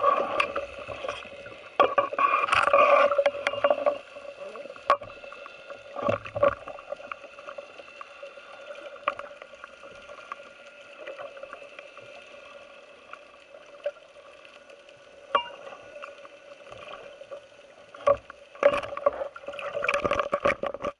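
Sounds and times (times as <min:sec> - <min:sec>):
steady underwater hum: 0:00.0 - 0:20.9.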